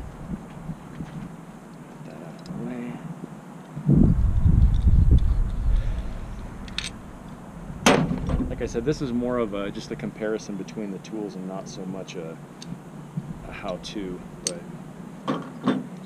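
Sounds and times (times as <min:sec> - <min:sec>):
low rumble: 0:03.9 - 0:09.8
metal tool clanking on bench: 0:14.4 - 0:14.6.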